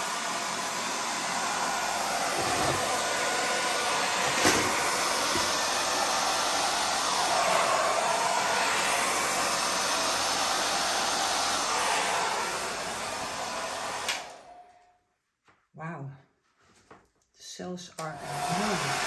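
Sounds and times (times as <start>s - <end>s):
hair dryer running: 0.0s - 14.9s, 18.0s - 19.0s.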